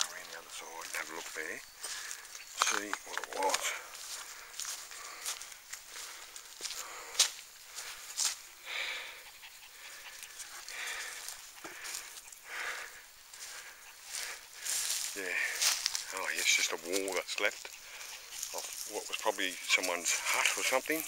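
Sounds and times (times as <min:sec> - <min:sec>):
brushing through undergrowth: 0:00.0 - 0:08.5, 0:10.2 - 0:21.0
footsteps crunching through dry leaves: 0:00.0 - 0:08.6, 0:09.9 - 0:21.0
panting breaths: 0:00.0 - 0:21.0.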